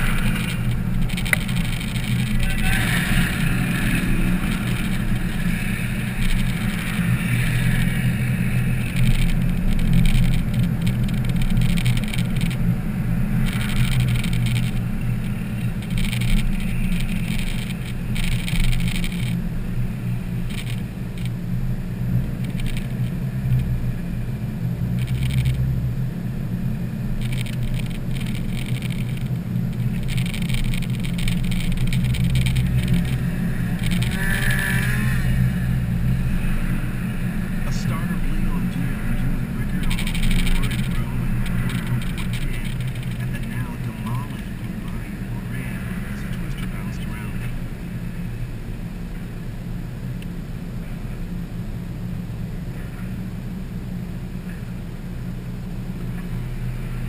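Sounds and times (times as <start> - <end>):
high-pitched noise bursts: 0.0 - 21.3, 26.7 - 48.4
car road and engine hum: 0.0 - 57.0.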